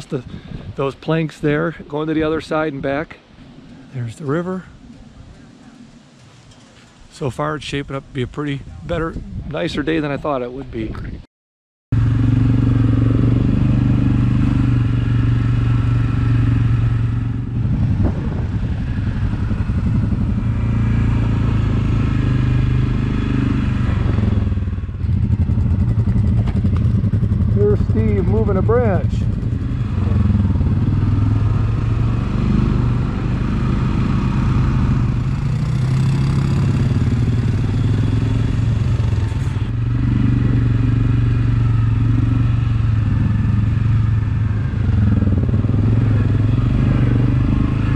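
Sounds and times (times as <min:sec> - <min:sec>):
atv engine running: 0:12.0 - 0:47.9.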